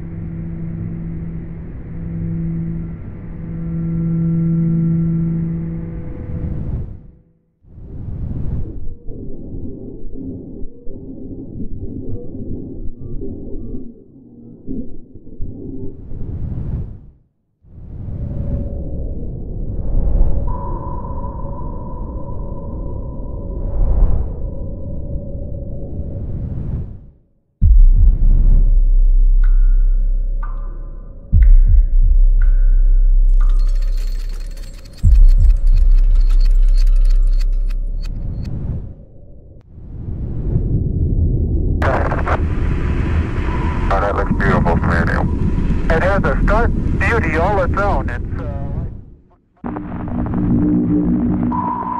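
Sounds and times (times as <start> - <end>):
low ambient droning tones: 0.0 - 7.2, 41.2 - 51.9
low rumble: 22.4 - 51.9
deep cinematic hit: 27.6 - 33.5
high crackling and tinkling: 33.3 - 38.5.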